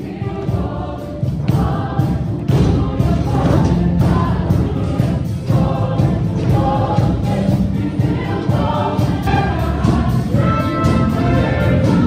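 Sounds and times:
choir singing with band: 0:00.0 - 0:12.0.

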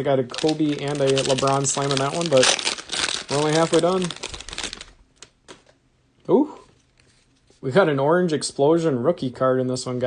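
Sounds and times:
plastic wrapper crinkling: 0:00.0 - 0:05.8.

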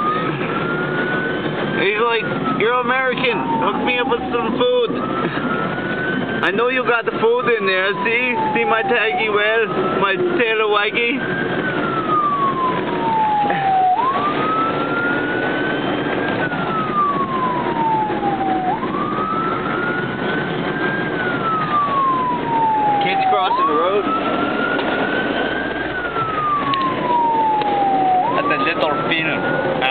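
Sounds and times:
emergency vehicle siren wailing: 0:00.0 - 0:29.9.

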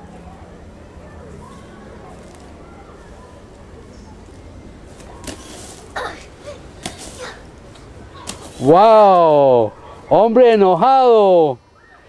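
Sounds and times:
rake scraping through dry leaves: 0:04.9 - 0:06.0, 0:06.8 - 0:07.4, 0:08.2 - 0:09.0.

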